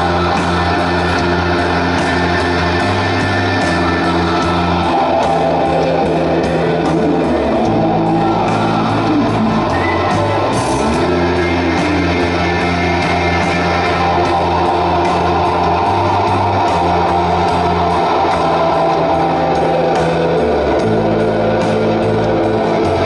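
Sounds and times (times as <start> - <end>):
bass guitar notes: 0.0 - 23.0
drums: 0.0 - 23.0
electric guitar: 0.0 - 23.0.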